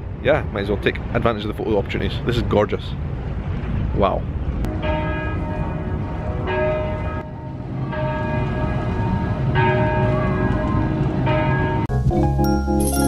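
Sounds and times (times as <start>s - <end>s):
steady low rumble: 2.9s - 12.3s
church bell tolling: 4.7s - 13.0s.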